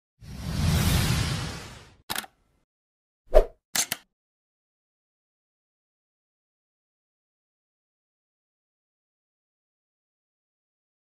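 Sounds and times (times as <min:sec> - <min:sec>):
short click: 0:03.8 - 0:04.1.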